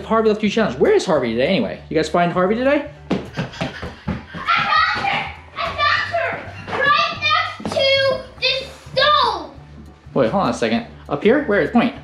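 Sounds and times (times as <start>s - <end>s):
children talking and calling out: 4.3s - 9.6s.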